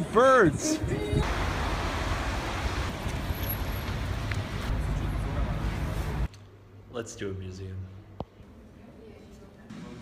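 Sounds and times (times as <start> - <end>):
traffic hum and rumble: 0.8 - 7.0.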